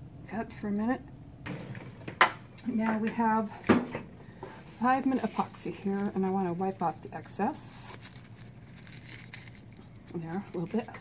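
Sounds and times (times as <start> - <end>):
paper towel rustling and rubbing: 4.4 - 11.0.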